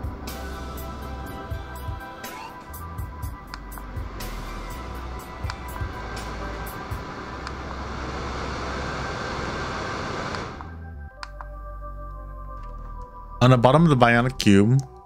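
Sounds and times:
background music: 0.0 - 15.0
small fan running: 3.2 - 10.8.

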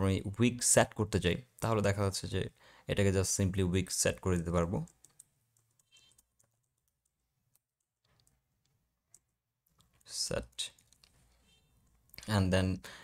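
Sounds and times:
man speaking: 0.0 - 4.9, 10.0 - 10.8, 12.2 - 13.0.

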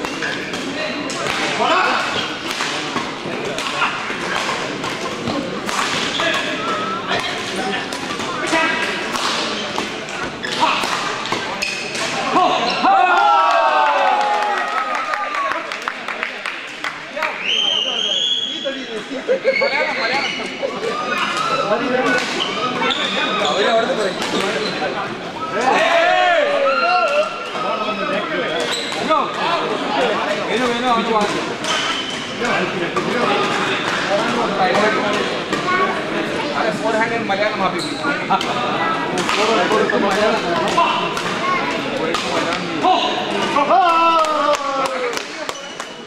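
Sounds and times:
rackets hitting shuttlecock: 0.0 - 12.2, 38.3 - 41.4, 42.0 - 42.7
crowd voices in hall: 0.0 - 46.0.

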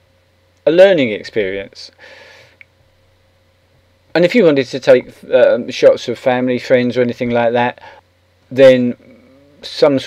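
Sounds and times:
faint electrical hum: 0.0 - 10.0
short breath: 2.0 - 2.6, 7.8 - 8.1.

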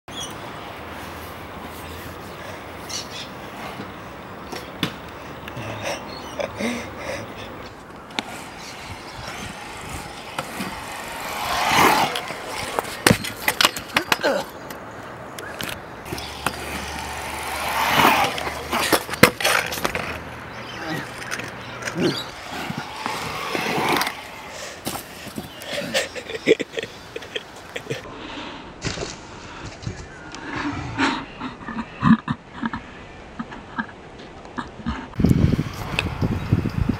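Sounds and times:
scooter rolling on concrete: 3.5 - 28.1
scooter rider hitting the ground: 9.2 - 14.3, 16.1 - 20.2.

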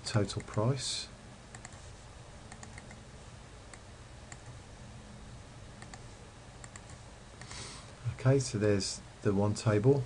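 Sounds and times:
low steady hum: 0.0 - 10.0
mouse and keyboard clicks: 1.5 - 1.8, 2.5 - 3.0, 6.6 - 7.5.

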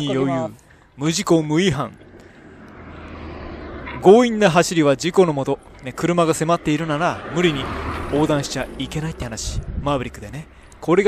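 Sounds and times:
van driving on road: 0.0 - 11.0.

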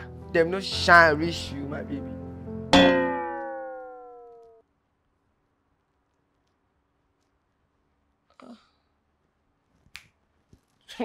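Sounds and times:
guitar-like chord with sagging pitch: 2.7 - 4.4.

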